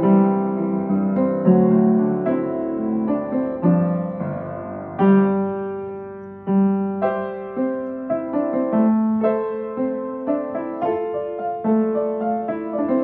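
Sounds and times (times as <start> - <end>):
solo piano playing: 0.0 - 13.0.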